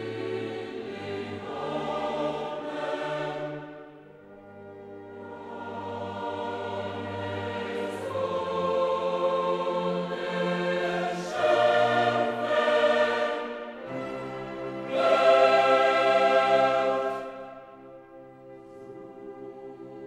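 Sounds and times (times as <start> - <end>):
choir with orchestra: 0.0 - 20.0.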